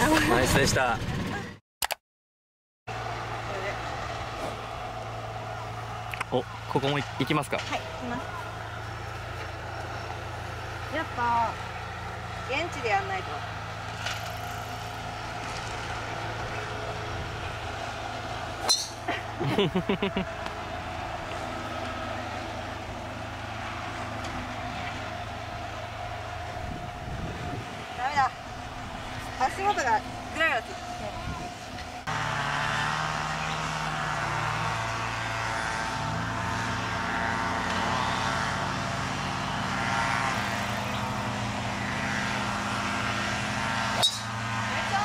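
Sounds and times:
low mechanical hum: 0:02.9 - 0:45.0
voices and laughter: 0:19.0 - 0:20.6.

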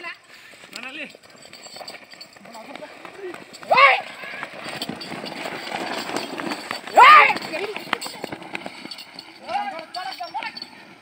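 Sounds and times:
bull hooves on dirt: 0:00.0 - 0:11.0
stone sled dragging on dirt: 0:00.0 - 0:11.0
footsteps of people running: 0:00.4 - 0:11.0
loud shout: 0:03.7 - 0:04.1, 0:06.9 - 0:07.5.

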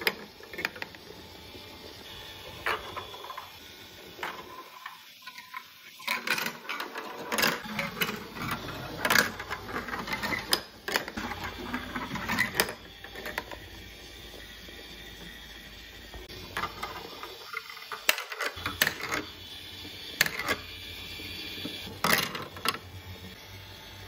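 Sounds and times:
marbles rolling on plastic track: 0:00.0 - 0:22.9.

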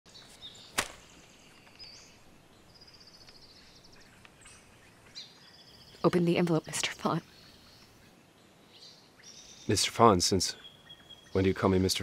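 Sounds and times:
faint birds chirping: 0:00.1 - 0:12.0
sharp click: 0:00.8 - 0:01.0.

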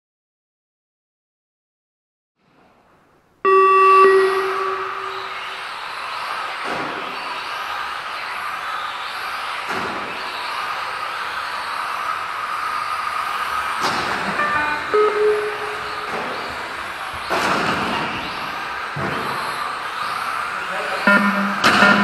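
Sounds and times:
loud electronic tone: 0:03.5 - 0:05.5, 0:14.2 - 0:16.8, 0:21.0 - 0:22.0
electric toy car motors whining: 0:05.3 - 0:14.4, 0:16.3 - 0:21.0.

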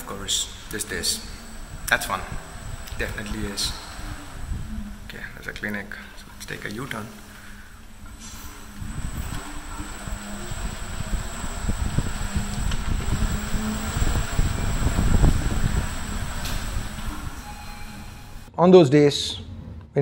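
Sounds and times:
scooter rolling rumble: 0:00.0 - 0:17.4
faint high whine: 0:00.0 - 0:18.5
wind buffeting microphone: 0:00.0 - 0:18.5.

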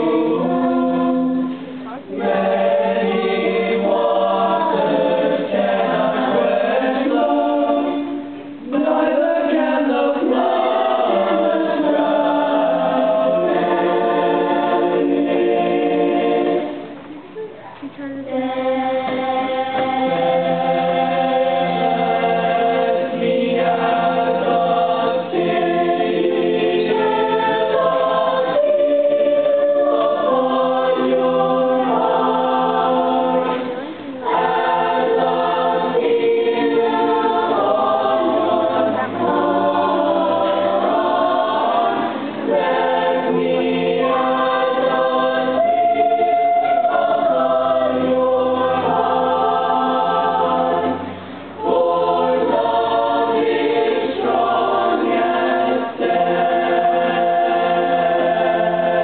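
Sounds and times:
young choir singing unaccompanied: 0:00.0 - 0:59.0.

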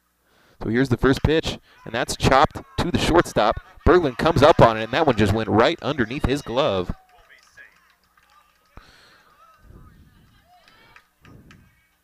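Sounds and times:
distant shouts and calls: 0:01.5 - 0:12.0.

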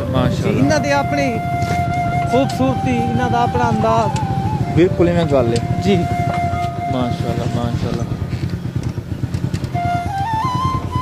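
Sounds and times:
high flute note: 0:00.0 - 0:08.1
small engine running: 0:00.0 - 0:11.0.

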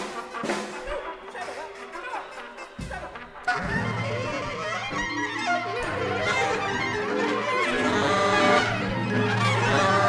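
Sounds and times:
free jazz ensemble playing: 0:00.0 - 0:10.0
held wind instrument notes: 0:00.0 - 0:10.0.

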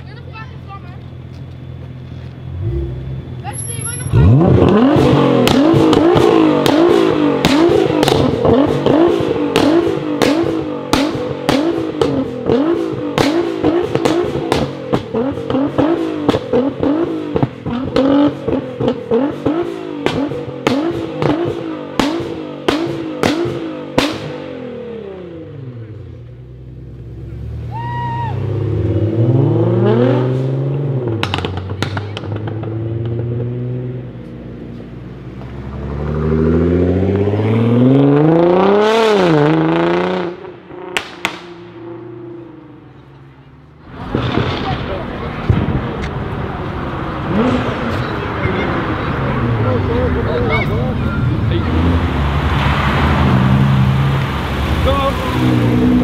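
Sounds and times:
car engine revving: 0:00.6 - 0:56.0
exhaust pops and bangs: 0:04.6 - 0:24.4, 0:31.1 - 0:33.5, 0:40.9 - 0:41.6, 0:43.8 - 0:46.3.

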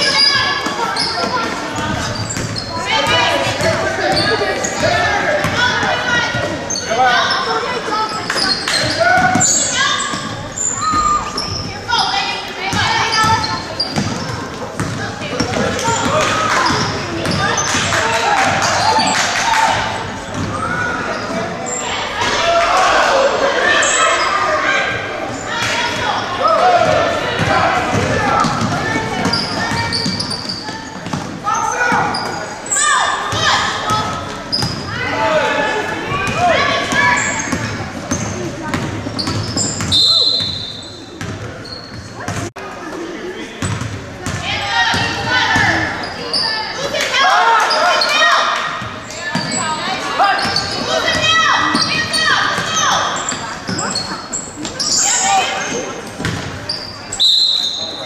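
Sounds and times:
voices shouting: 0:00.0 - 0:41.0, 0:44.4 - 0:58.0
referee whistle: 0:39.8 - 0:41.0, 0:57.1 - 0:58.0.

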